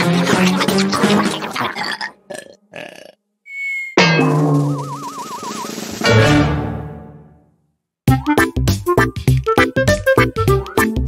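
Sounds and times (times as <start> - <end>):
wobbling tone: 3.5 - 5.8
high ping: 4.0 - 5.1.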